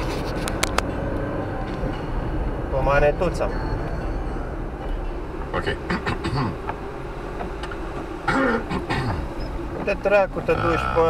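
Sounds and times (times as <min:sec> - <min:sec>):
car engine and road noise: 0:00.0 - 0:11.0
man speaking: 0:09.9 - 0:11.0.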